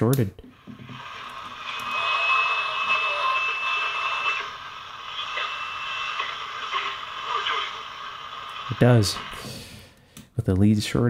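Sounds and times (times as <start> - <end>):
radio hiss: 0.5 - 9.8
thin steady whistle tone: 0.9 - 6.4.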